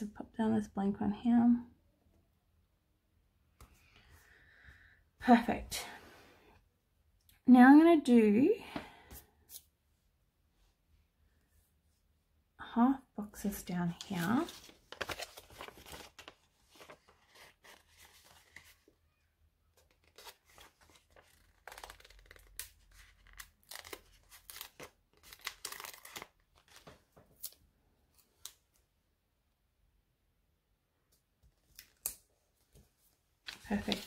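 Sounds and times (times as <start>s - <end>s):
paper sticker sheet crackling: 13.9s - 18.8s, 19.8s - 27.6s, 33.5s - 34.0s.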